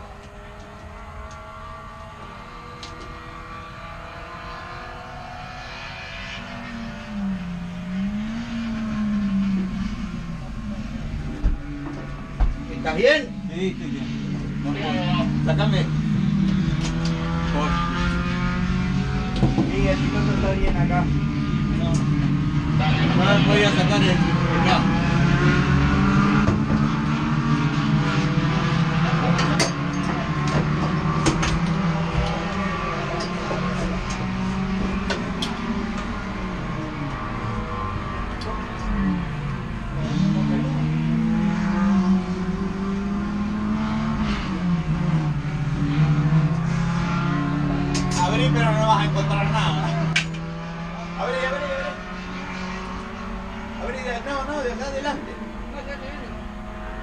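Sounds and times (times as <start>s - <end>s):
race car engine revving: 0.0s - 57.0s.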